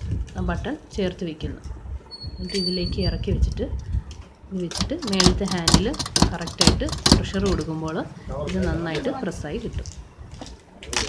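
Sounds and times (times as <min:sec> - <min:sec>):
sharp clicks and knocks: 0:03.4 - 0:08.0
person talking: 0:04.5 - 0:09.9.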